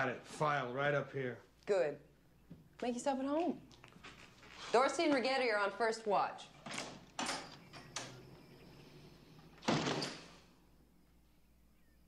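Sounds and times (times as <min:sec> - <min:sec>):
door shutting: 0:06.6 - 0:10.6.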